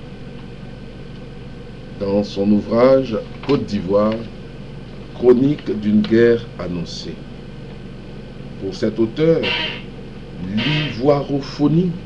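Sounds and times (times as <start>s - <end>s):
steady low hum: 0.0s - 12.0s
background hiss: 9.4s - 9.9s.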